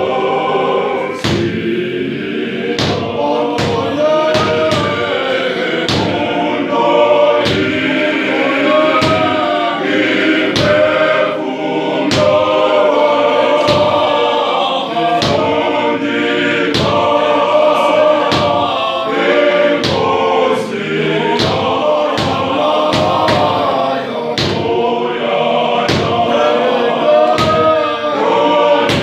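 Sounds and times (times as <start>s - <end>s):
men's choir singing a hymn: 0.0s - 29.0s
hand claps: 5.8s - 6.3s, 12.1s - 12.4s, 21.4s - 23.7s, 25.9s - 26.2s.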